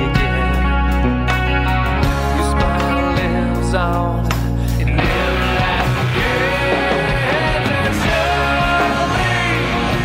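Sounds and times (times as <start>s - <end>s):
backing track with bass and drums: 0.0s - 10.0s
electric guitar lead line: 0.0s - 10.0s.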